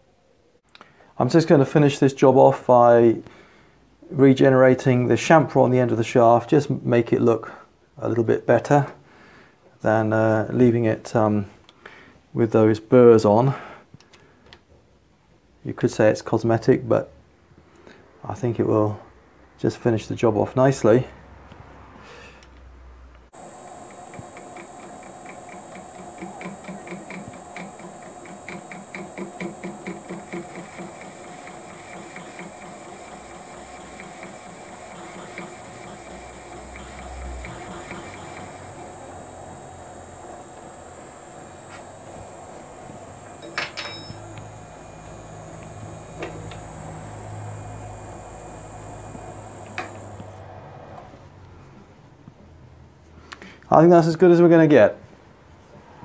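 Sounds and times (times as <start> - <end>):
fast even ticking: 23.4 - 50.9
sharp clicks: 23.4 - 51.0
metal lathe whining: 23.4 - 51.1.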